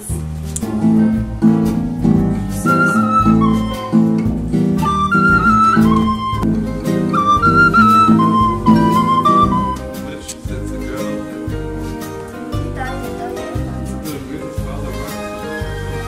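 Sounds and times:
acoustic guitar strumming chords: 0.0 - 16.0
wooden flute melody: 0.7 - 11.3, 14.7 - 16.0.

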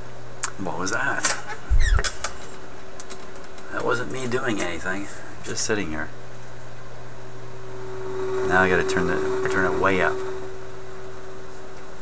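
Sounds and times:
radio hum: 2.6 - 12.0.

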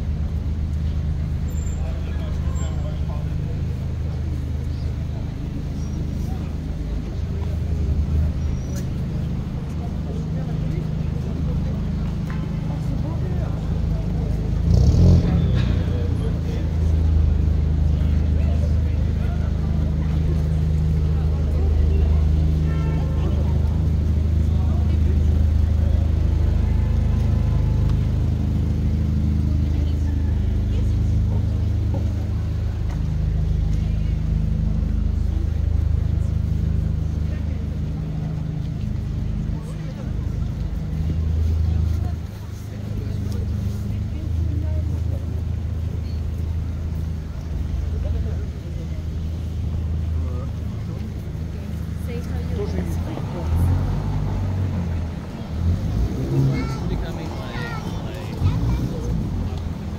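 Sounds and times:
car engines idling: 0.0 - 59.9
vehicle passing: 34.2 - 59.9.

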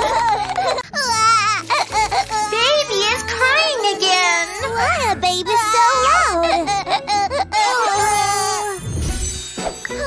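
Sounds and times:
cartoon baby crying: 0.0 - 8.8
background music: 0.0 - 10.0.

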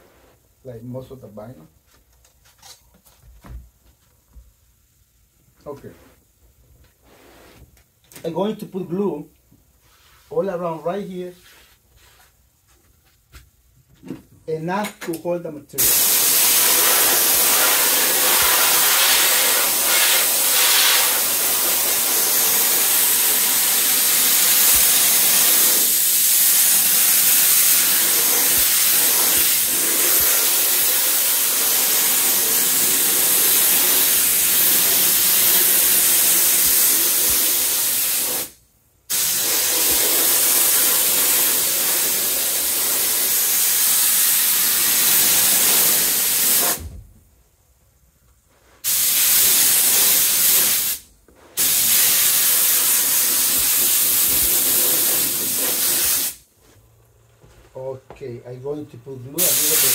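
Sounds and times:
spray gun hissing: 15.8 - 46.8, 48.8 - 51.0, 51.6 - 56.4, 59.4 - 59.9.

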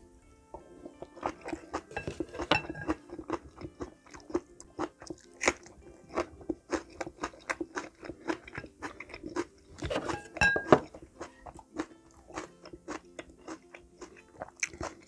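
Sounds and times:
crunchy chewing: 0.5 - 15.0.

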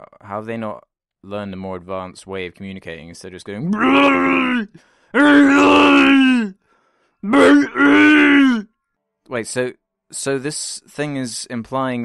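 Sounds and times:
creature vocalising: 3.6 - 6.6, 7.2 - 8.7.

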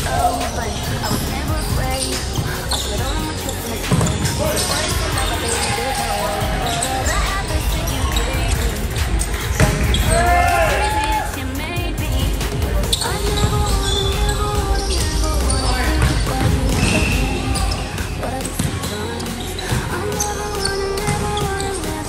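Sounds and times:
players calling out: 0.0 - 22.0
volleyball being struck: 9.5 - 10.8.

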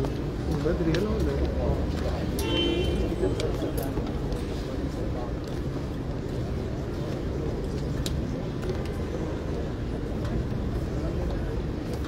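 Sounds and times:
crowd murmur: 0.0 - 12.0
street noise rumble: 0.0 - 12.0.

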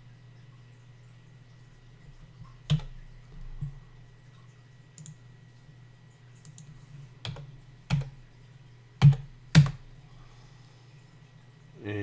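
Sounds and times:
low steady hum: 0.0 - 12.0
computer keys clicking: 2.7 - 3.0, 5.0 - 5.2, 6.4 - 8.2, 9.0 - 9.8.

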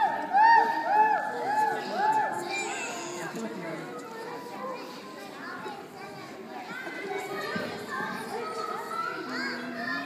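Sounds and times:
young children chattering: 0.0 - 10.0.

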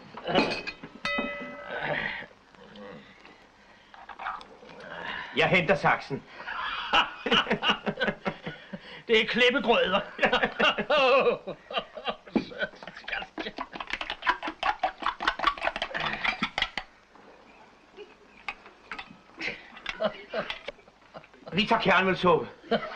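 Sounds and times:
men murmuring: 6.2 - 9.0, 9.9 - 14.0
men laughing heartily: 6.4 - 9.1, 9.8 - 16.8, 19.4 - 21.6, 22.6 - 22.9.

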